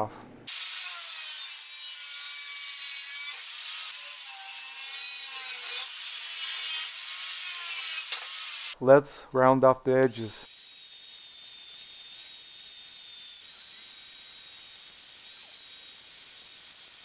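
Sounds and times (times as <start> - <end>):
angle grinder cutting metal: 0.5 - 8.8, 10.0 - 17.0.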